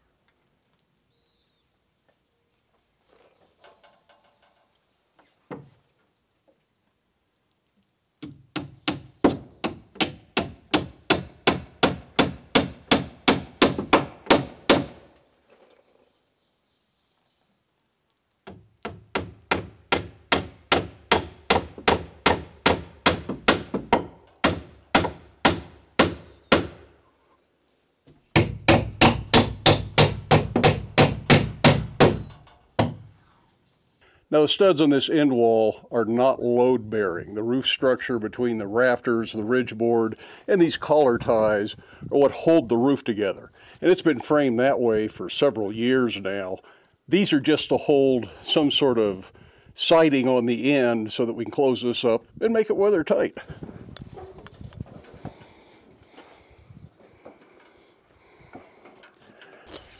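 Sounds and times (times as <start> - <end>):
hammer nailing wood: 8.2 - 15.0, 18.4 - 26.9, 28.3 - 33.0.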